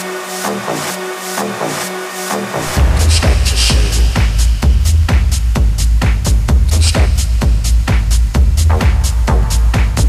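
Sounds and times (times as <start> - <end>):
hi-hats: 0.0 - 10.0
techno music: 0.0 - 10.0
heavy bass line: 0.4 - 10.0
pounding kick drum: 2.6 - 10.0.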